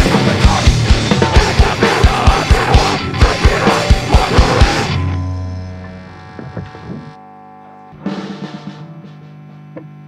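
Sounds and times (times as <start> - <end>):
guitar amplifier mains hum: 0.0 - 10.0
guitar string and handling noises: 5.8 - 7.1.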